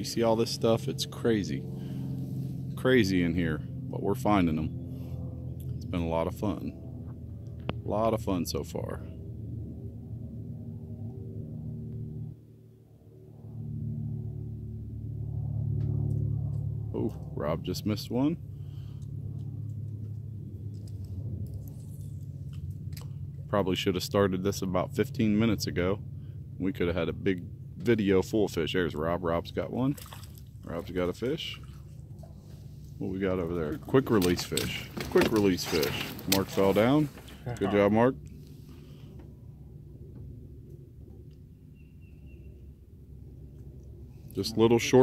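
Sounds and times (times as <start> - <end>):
steady low hum: 0.0 - 45.0
steady low rumble: 0.0 - 45.0.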